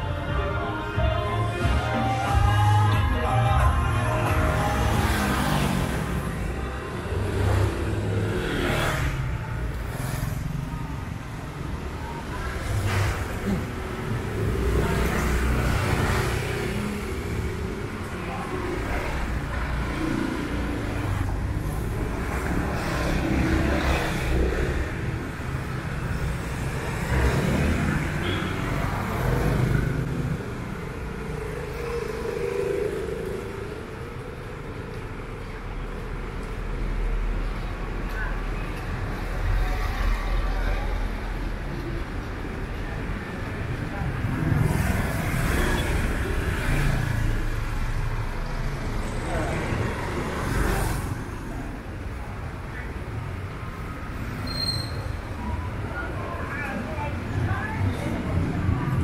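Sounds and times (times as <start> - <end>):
background traffic rumble: 0.0 - 59.0
scooters and cars passing: 0.0 - 59.0.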